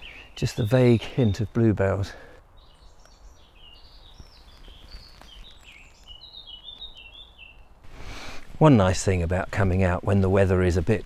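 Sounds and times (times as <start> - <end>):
songbird chirping: 0.0 - 11.0.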